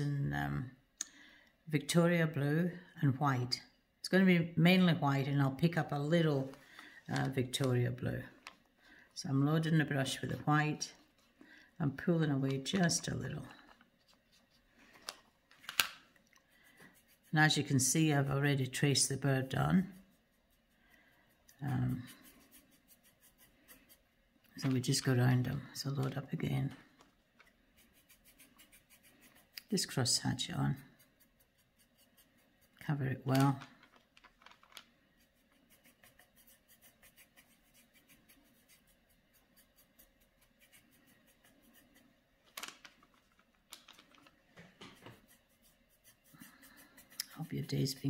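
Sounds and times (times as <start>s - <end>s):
paintbrush strokes on canvas: 16.4s - 33.3s, 35.0s - 42.2s, 44.6s - 48.0s.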